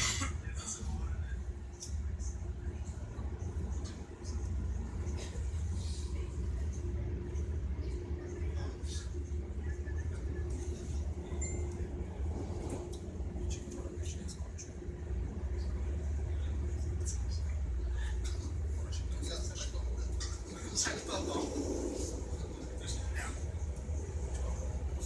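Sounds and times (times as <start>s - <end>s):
faint hum: 0.0s - 25.0s
train rumbling inside carriage: 0.0s - 25.0s.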